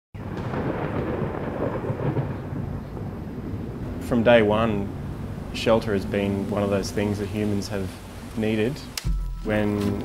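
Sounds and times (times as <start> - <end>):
rolling thunder: 0.2 - 7.2.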